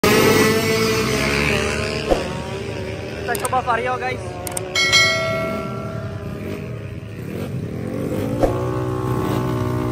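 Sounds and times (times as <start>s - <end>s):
motor scooter engines running: 0.0s - 9.9s.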